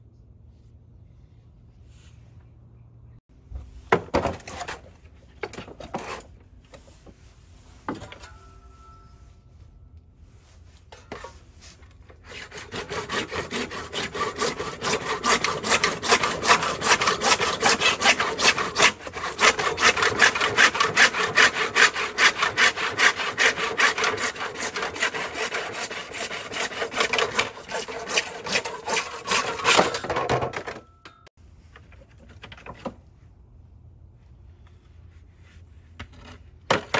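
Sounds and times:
hand saw cutting plastic: 11.9s - 30.8s.

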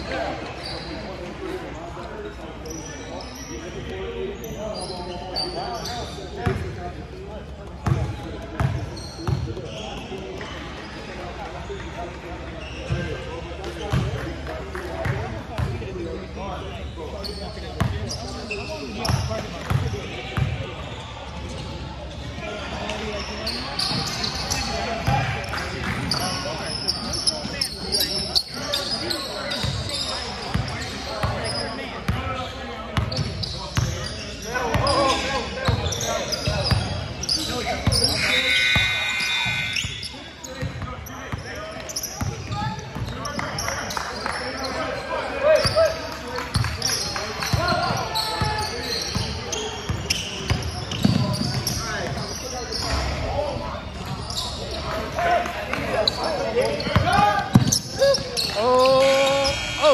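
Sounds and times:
shoe squeal: 0.0s - 6.6s, 7.8s - 11.8s, 12.4s - 14.2s, 15.6s - 55.2s, 55.8s - 59.9s
indistinct voices: 58.0s - 59.9s.

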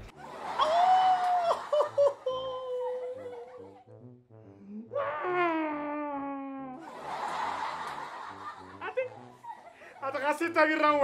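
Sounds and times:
man wailing into a pillow: 0.6s - 3.5s, 4.9s - 6.8s
man sobbing: 0.6s - 3.8s.

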